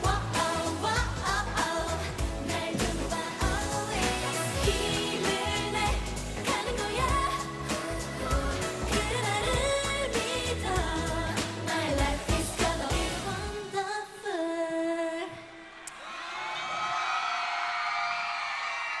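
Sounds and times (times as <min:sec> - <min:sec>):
heavy drum beat: 0:00.0 - 0:13.3
girl group singing dance-pop: 0:00.0 - 0:15.7.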